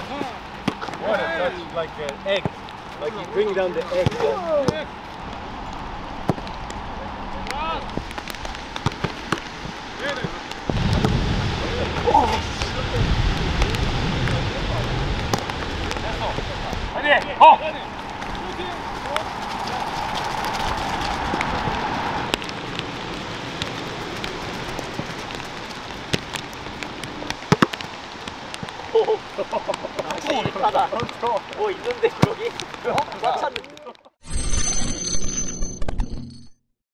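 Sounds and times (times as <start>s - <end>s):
balls being kicked: 6.2s - 6.8s, 7.4s - 11.2s, 23.6s - 28.8s, 30.0s - 33.8s
low rumble: 10.6s - 17.0s
players shouting: 16.9s - 22.2s, 28.9s - 33.7s.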